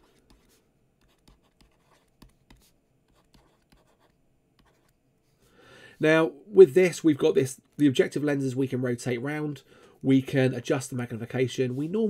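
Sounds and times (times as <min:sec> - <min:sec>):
stylus scratching on tablet screen: 0:00.0 - 0:05.0.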